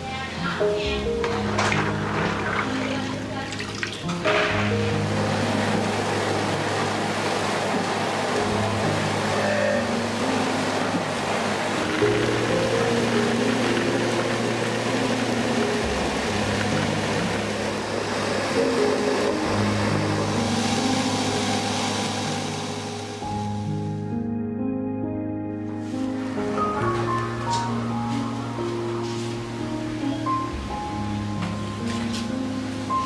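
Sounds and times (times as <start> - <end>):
soft background music: 0.0 - 33.0.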